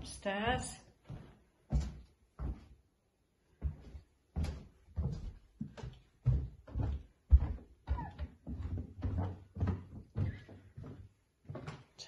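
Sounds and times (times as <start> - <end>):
footsteps on carpeted stairs: 0.0 - 12.0.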